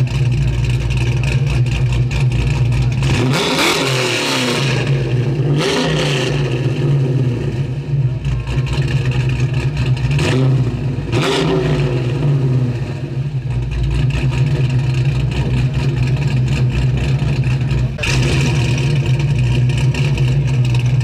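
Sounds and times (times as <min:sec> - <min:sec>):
car engine rumbling: 0:00.0 - 0:21.0.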